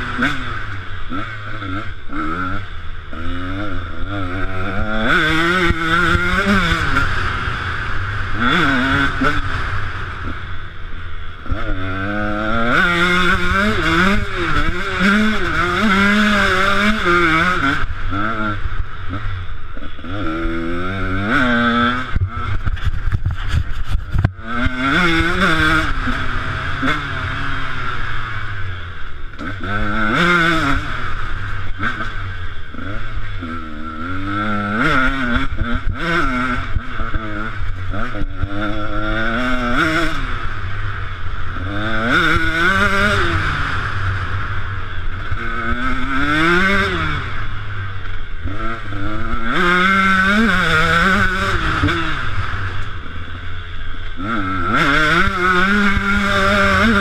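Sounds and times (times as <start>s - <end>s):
motocross engine revving: 0.0s - 57.0s.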